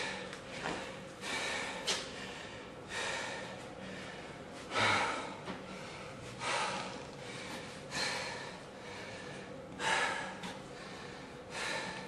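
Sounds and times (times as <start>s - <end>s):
faint steady hum: 0.0s - 12.0s
man exhaling forcefully: 4.7s - 5.4s.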